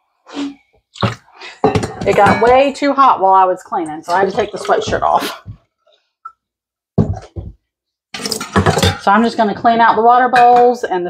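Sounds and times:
bowl rattling and clattering: 0:01.0 - 0:02.8, 0:08.2 - 0:09.5
dog bowl knocking on sink: 0:01.7 - 0:02.7.

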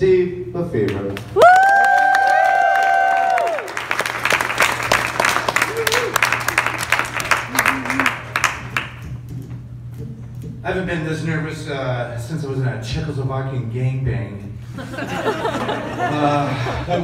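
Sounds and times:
audience clapping: 0:00.8 - 0:09.5
audience whooping and cheering: 0:01.2 - 0:08.6.

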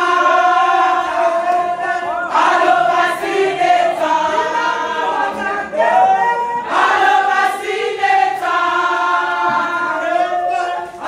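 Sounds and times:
women singing in chorus: 0:00.0 - 0:11.0.

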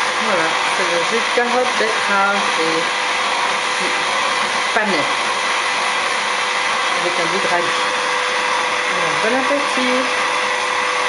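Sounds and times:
juicer motor whirring: 0:00.0 - 0:11.0.

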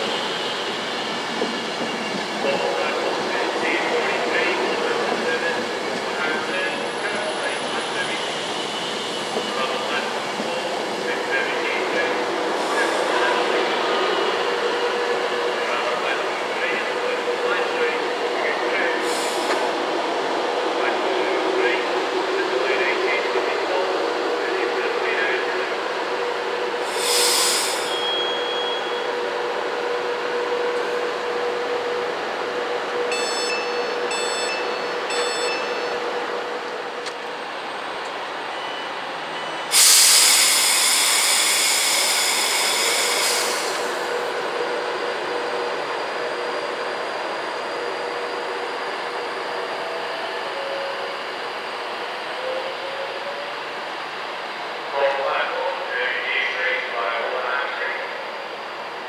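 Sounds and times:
electric train hum: 0:00.0 - 0:59.0
compressed air hissing: 0:26.8 - 0:28.0, 0:39.7 - 0:44.2
door-warning beeps: 0:33.1 - 0:36.0.

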